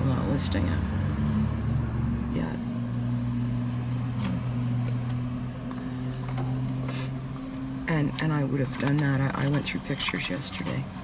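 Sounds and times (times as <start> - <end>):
deep engine rumble: 0.0 - 11.0
vehicle engine idling: 0.0 - 11.0.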